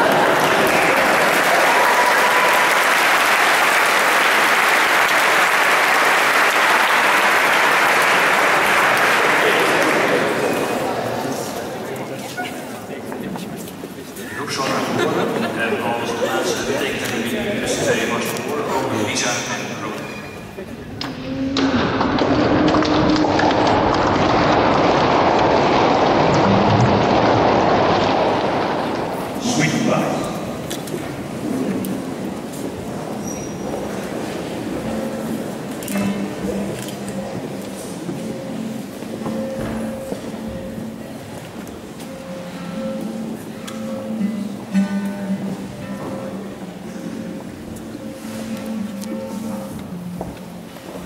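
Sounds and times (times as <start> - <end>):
audience applauding: 0.0 - 11.9, 22.2 - 32.1
guitar accompaniment: 34.0 - 51.0.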